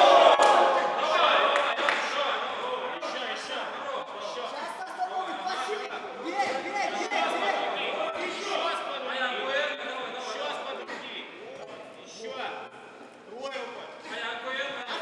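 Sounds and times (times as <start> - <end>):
crowd shouting: 0.0 - 9.1.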